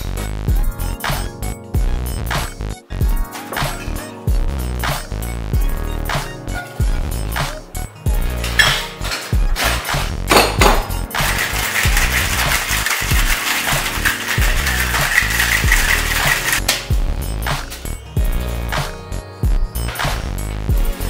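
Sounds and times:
background music with beat: 0.0s - 21.0s
ice rattling in cocktail shaker: 10.9s - 16.6s.

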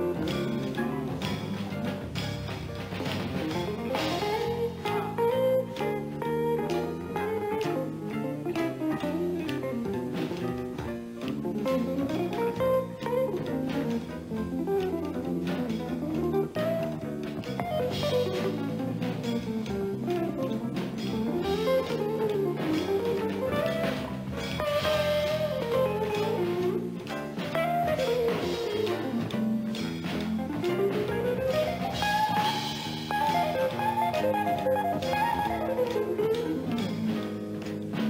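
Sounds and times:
drum kit on cymbals and drums: 0.0s - 5.4s, 17.0s - 34.4s, 35.0s - 38.0s.

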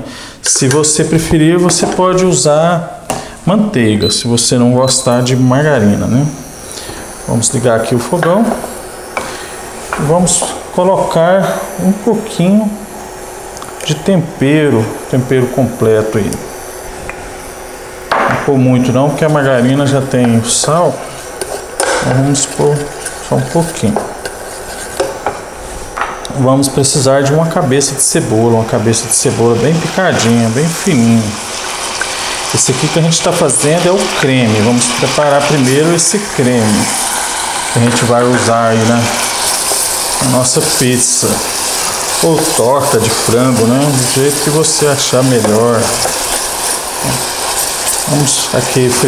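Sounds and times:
onion sizzling in a saucepan: 0.5s - 49.0s
wooden spoon stirring in saucepan: 19.2s - 25.7s, 31.5s - 49.0s
wooden spoon stirring and scraping: 20.1s - 25.8s.

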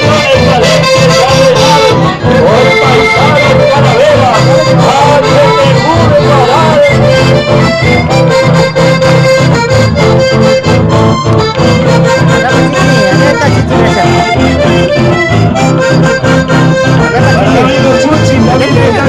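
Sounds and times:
accordion melody: 0.0s - 19.0s
bass: 0.0s - 19.0s
steady beat: 0.0s - 19.0s
strummed guitars: 0.0s - 19.0s.

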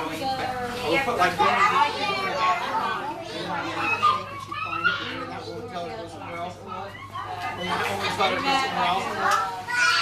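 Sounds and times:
young children chattering: 0.0s - 10.0s.

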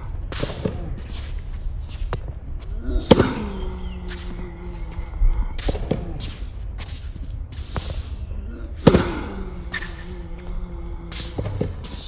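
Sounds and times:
tennis ball being struck: 3.0s - 3.5s, 8.8s - 9.9s
shoes scuffing on court: 5.6s - 8.2s.

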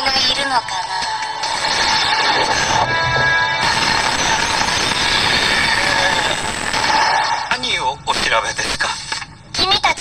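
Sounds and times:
harsh noise with squealing tones: 0.8s - 9.1s.

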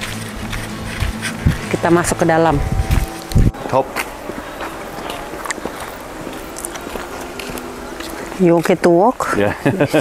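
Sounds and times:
footsteps on forest path: 0.0s - 10.0s
outdoor background noise: 0.0s - 10.0s.

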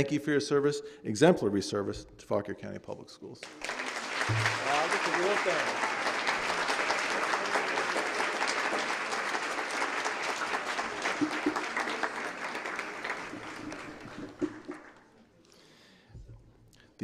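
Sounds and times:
audience applauding: 3.4s - 15.2s.

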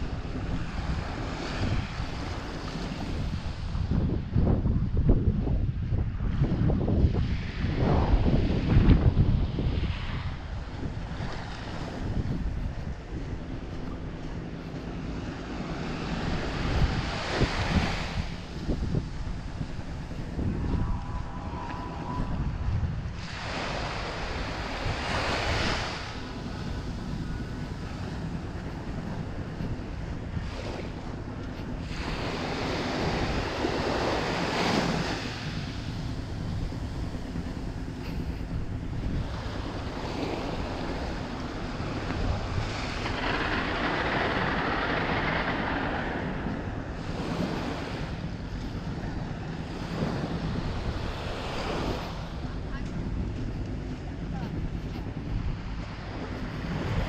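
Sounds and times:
small waves washing on sand: 0.0s - 4.7s, 5.8s - 57.0s
wind rumbling on microphone: 0.0s - 57.0s.

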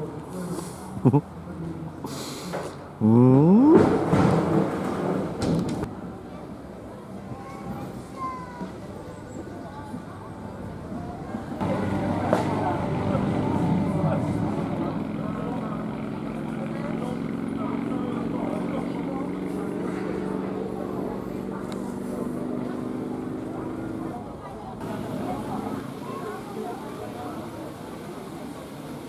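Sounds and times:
motorcycle engine idling: 11.6s - 24.2s.

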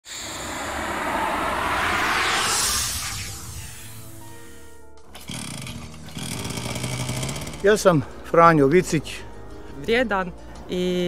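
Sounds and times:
rushing whoosh: 0.0s - 5.0s.

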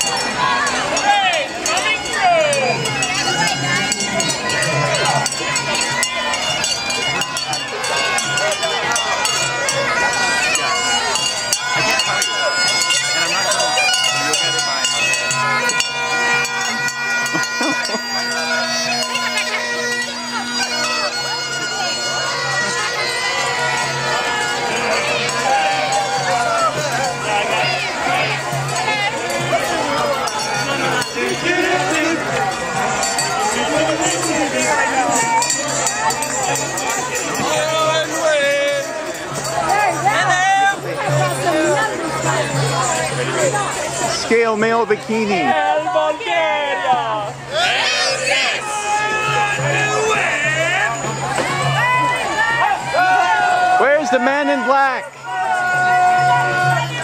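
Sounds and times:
small clinks or bell strikes: 0.0s - 21.6s
crowd chatter: 0.0s - 57.0s
steady held tones: 0.1s - 8.1s.

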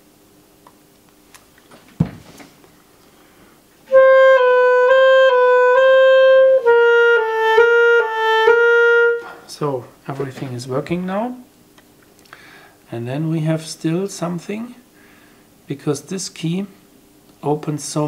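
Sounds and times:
clarinet alternating two notes: 3.9s - 9.4s.

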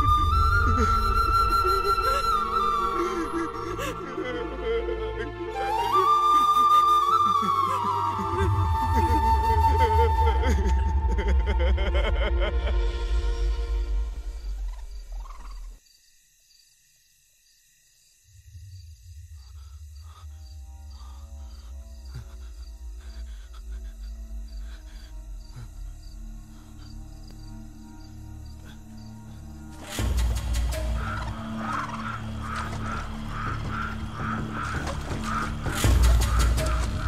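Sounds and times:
low film score music: 0.0s - 15.8s, 18.4s - 37.0s
frogs croaking: 14.1s - 37.0s.

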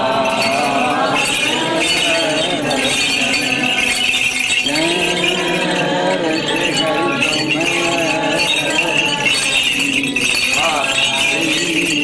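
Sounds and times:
small metal bells jingling: 0.0s - 12.0s
voices chanting slow melody: 0.0s - 12.0s.

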